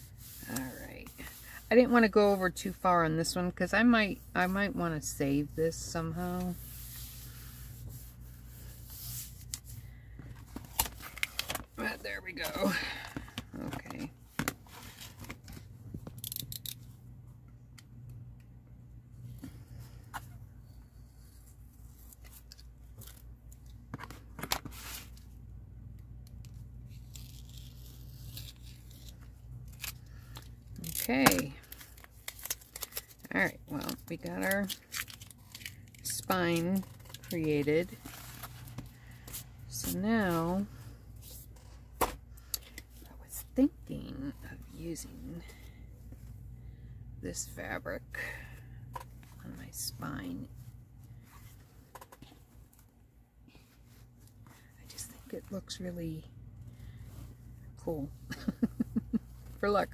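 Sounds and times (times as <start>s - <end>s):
wordless voice: 0.4s - 6.7s, 11.8s - 14.2s, 39.7s - 40.7s, 43.1s - 45.6s, 49.4s - 50.6s
paper crackling and tearing: 26.9s - 33.3s.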